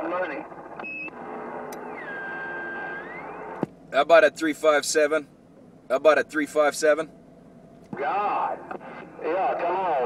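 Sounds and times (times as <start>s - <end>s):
radio static hiss: 0.0s - 3.6s, 8.0s - 10.0s.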